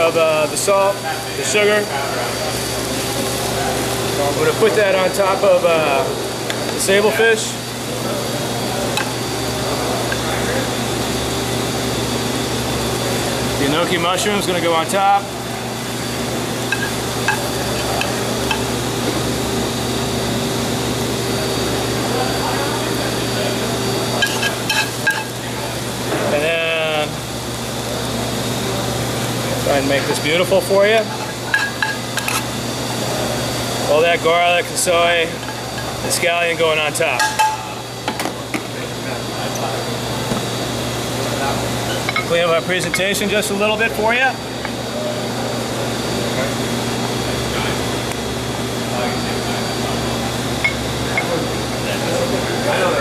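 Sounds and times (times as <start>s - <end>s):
kitchen ventilation humming: 0.0s - 53.0s.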